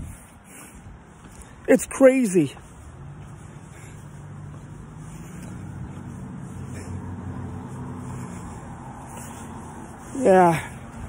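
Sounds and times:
motor vehicle engine humming: 0.0 - 11.0.

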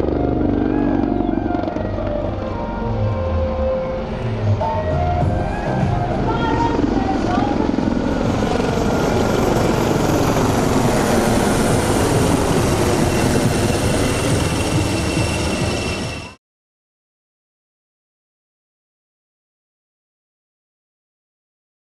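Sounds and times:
helicopter rotor and turbine noise: 0.0 - 16.4
voices: 5.5 - 9.1.

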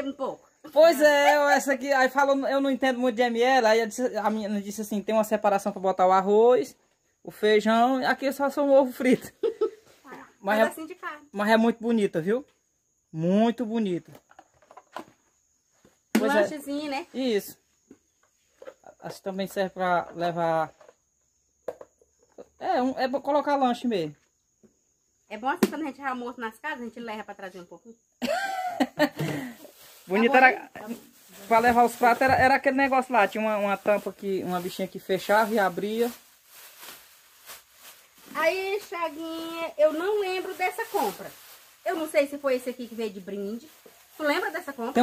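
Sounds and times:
plastic bag crinkling: 29.3 - 45.0.

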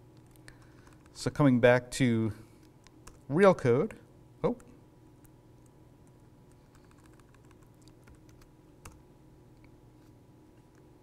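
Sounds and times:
computer keyboard keystrokes: 0.2 - 1.2, 6.0 - 9.0.

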